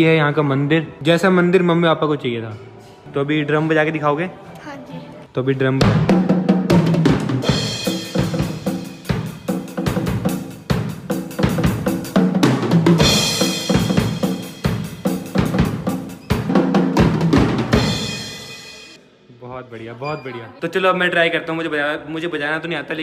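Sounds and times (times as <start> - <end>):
rapid drum strikes: 5.8 - 19.0
cymbals ringing: 17.8 - 19.0.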